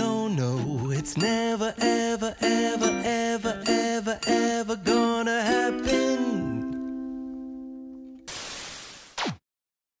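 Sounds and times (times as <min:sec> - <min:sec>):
ukulele chord: 0:00.0 - 0:08.3
static hiss: 0:08.3 - 0:09.4.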